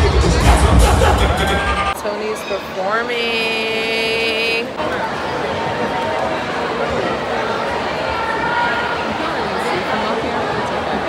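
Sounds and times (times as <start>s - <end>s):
crowd noise in a hall: 0.0s - 11.0s.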